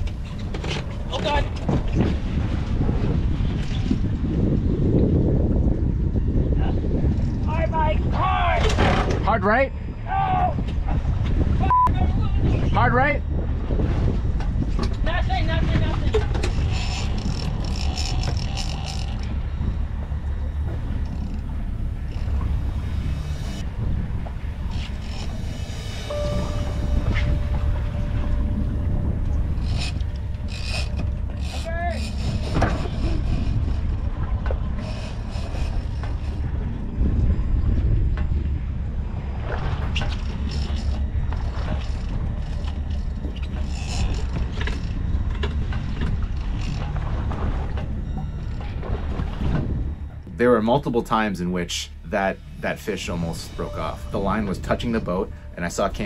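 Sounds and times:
boat engine running: 0.0s - 8.2s, 8.8s - 56.0s
wind rumbling on microphone: 0.0s - 56.0s.

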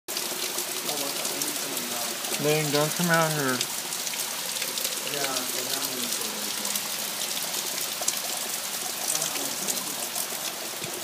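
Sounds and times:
heavy rain on standing water: 0.1s - 11.0s.

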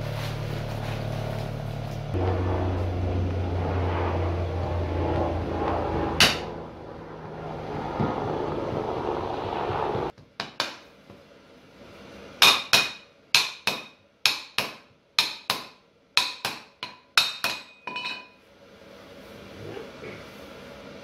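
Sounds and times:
dull noise: 0.0s - 10.1s
hammer striking steel bar: 6.2s - 6.5s, 10.4s - 10.9s, 12.4s - 18.4s.

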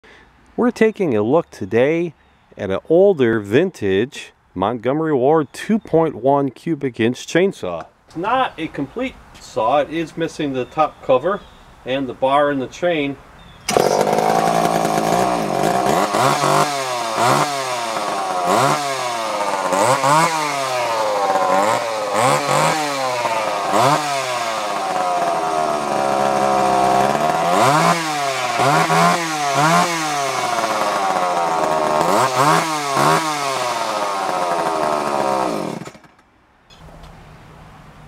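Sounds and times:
chainsaw engine idling and revving: 13.7s - 36.2s.

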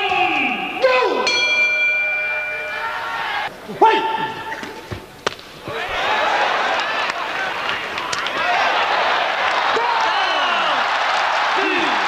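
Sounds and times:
ring bell struck: 1.2s - 3.5s.

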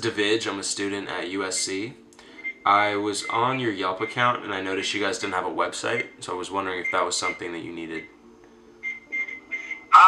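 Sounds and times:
faint steady background tones: 0.0s - 10.0s.

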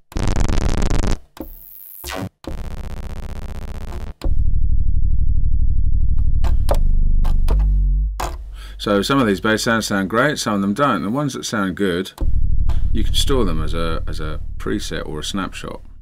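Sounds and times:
buzzy synth tone: 0.1s - 8.1s, 12.2s - 16.0s
synthesizer bass: 0.2s - 9.9s, 12.2s - 16.0s
deep bass with fast flutter: 2.6s - 9.8s, 12.2s - 16.0s.

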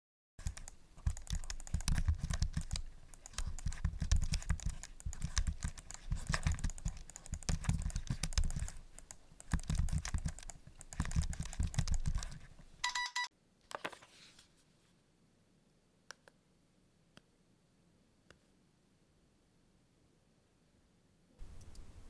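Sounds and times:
laptop keyboard typing: 0.4s - 12.5s
short electronic beep: 12.8s - 13.3s.

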